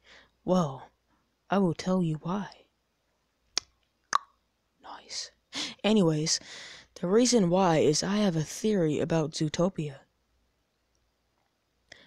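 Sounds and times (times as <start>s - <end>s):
faint breath: 0.0s - 0.4s, 5.5s - 5.8s, 6.4s - 7.0s.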